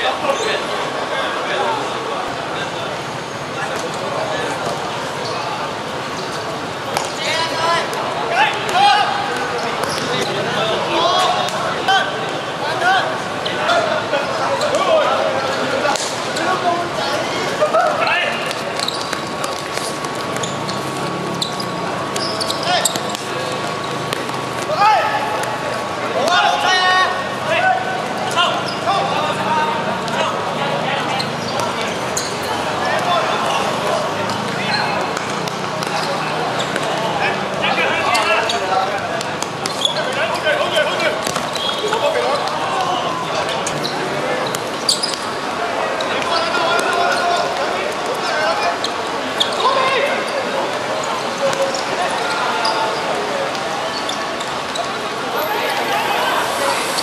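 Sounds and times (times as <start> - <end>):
players shouting: 6.4 - 57.0.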